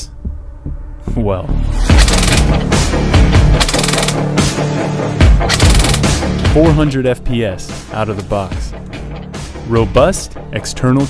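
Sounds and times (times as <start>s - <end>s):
loud background music: 0.0s - 11.0s
airsoft gun full-auto bursts: 2.0s - 2.5s, 3.6s - 4.2s, 5.5s - 6.2s.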